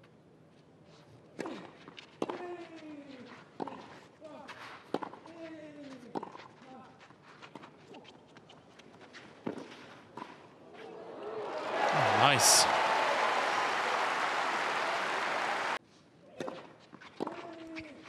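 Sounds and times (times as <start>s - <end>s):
player grunting: 11.8s - 12.8s.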